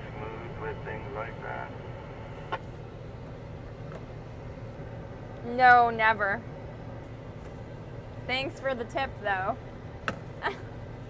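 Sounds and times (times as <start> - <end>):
combine harvester engine drone: 0.0 - 11.0.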